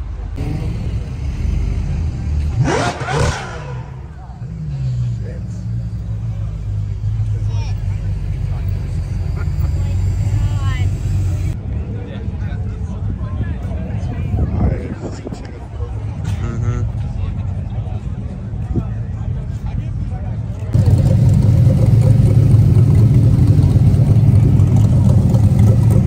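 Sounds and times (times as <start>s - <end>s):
car engine revving and rumbling: 0.0s - 11.6s, 20.4s - 26.0s
voices: 0.0s - 20.8s.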